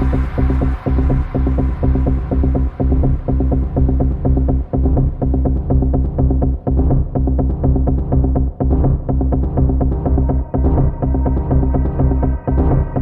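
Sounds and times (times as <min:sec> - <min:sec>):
pulsing techno bass line: 0:00.0 - 0:13.0.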